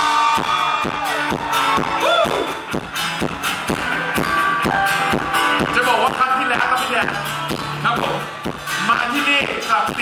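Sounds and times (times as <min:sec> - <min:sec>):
live pop band music: 0:00.0 - 0:10.0
steady drum beat: 0:00.0 - 0:10.0.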